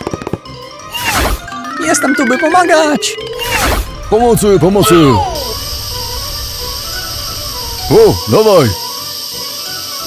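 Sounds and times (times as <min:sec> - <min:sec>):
faint background music: 0:00.0 - 0:10.0
fire extinguisher spraying hiss: 0:05.4 - 0:10.0.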